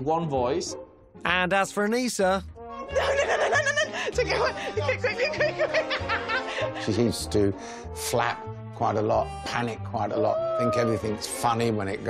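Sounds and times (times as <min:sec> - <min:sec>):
background music with bass line: 0:01.2 - 0:12.0
woman giggling: 0:02.9 - 0:06.7.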